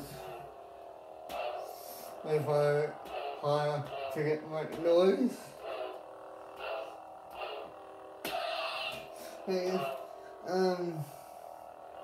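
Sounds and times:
lightsaber electronic hum: 0.0s - 12.0s
lightsaber swing sounds: 6.6s - 10.0s.

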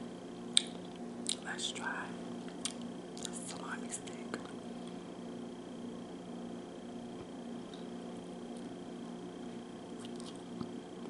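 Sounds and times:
faint steady hum: 0.0s - 11.0s
soft whispering: 1.4s - 2.2s, 3.3s - 4.6s.

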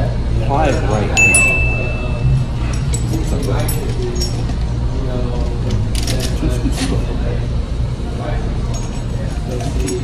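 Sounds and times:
low room hum: 0.0s - 10.0s
low voices: 0.9s - 8.6s.

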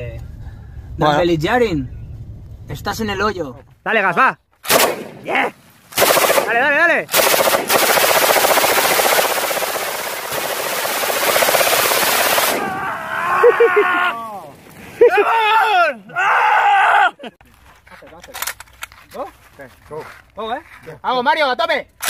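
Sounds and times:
machine gun firing: 4.7s - 5.3s, 6.0s - 12.8s
man whooping and yelling: 12.6s - 17.3s.

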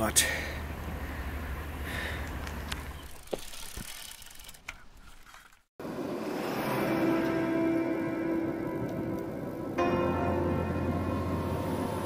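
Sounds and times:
bicycle freewheel ticking: 3.0s - 5.3s.

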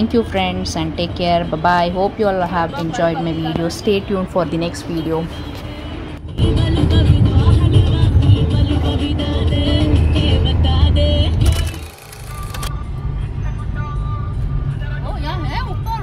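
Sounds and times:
voices: 0.0s - 6.0s
car engine and road rumble: 0.0s - 16.0s
music: 6.2s - 11.8s.

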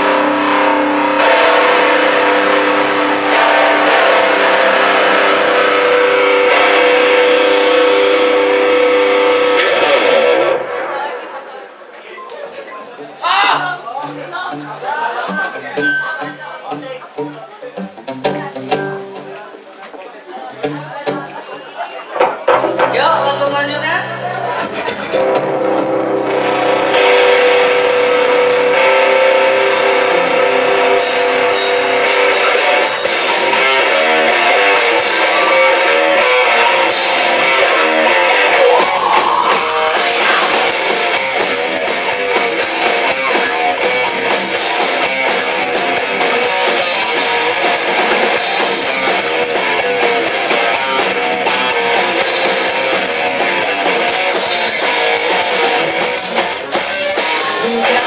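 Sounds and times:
cymbals crashing: 0.0s - 10.1s, 25.2s - 56.0s
live rock band playing: 0.0s - 10.8s, 13.0s - 19.6s, 20.5s - 58.0s
distorted electric guitar chords: 0.0s - 11.1s, 13.0s - 19.5s, 20.5s - 21.5s, 22.2s - 58.0s.

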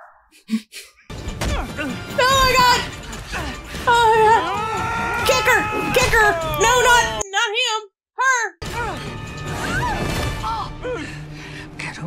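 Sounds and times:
dramatic music: 1.1s - 7.2s, 8.6s - 12.0s.

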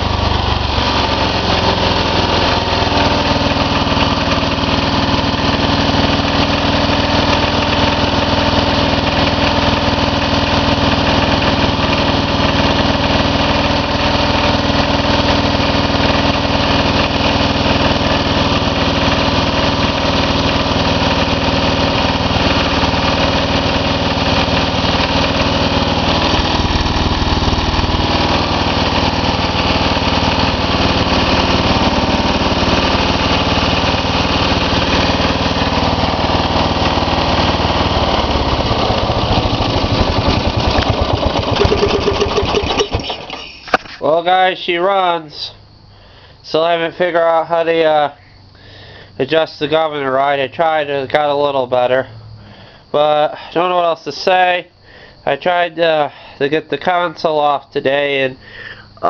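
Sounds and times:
garden tractor engine running: 0.0s - 59.0s.

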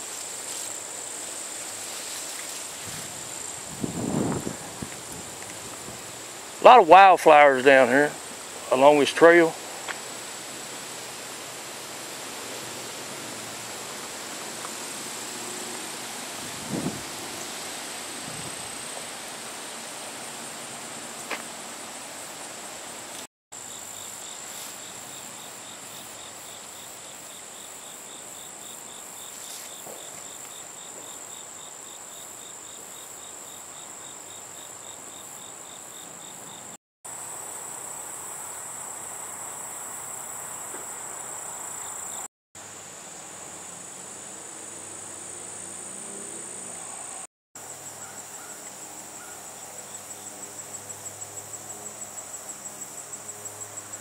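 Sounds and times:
high-pitched insect trill: 0.0s - 6.8s, 23.6s - 42.3s, 43.1s - 54.0s
lower pulsing insect call: 0.0s - 54.0s.

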